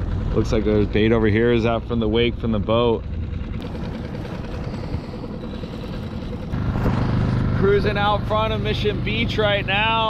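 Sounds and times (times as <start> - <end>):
outboard motor running: 0.0 - 10.0
water rushing along hull: 0.0 - 10.0.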